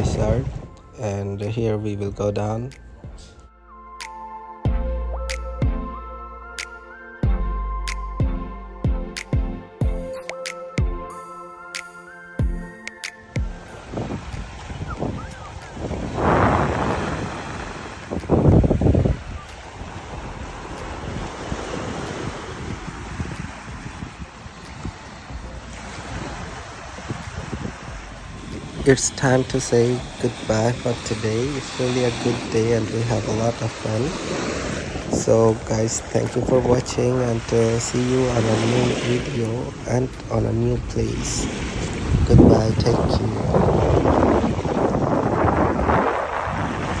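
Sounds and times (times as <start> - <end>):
wind blowing on microphone: 0.0 - 0.9, 13.5 - 47.0
sea waves washing: 0.0 - 1.3, 11.7 - 47.0.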